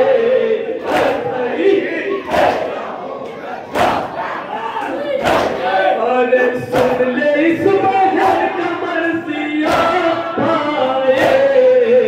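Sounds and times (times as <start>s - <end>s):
crowd chanting: 0.0s - 12.0s
men striking their chests: 3.7s - 4.3s, 5.2s - 5.7s, 6.7s - 7.2s, 9.6s - 11.7s.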